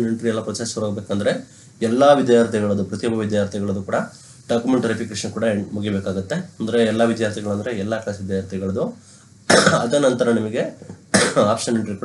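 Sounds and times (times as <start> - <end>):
man narrating: 0.0 - 9.0, 9.6 - 12.0.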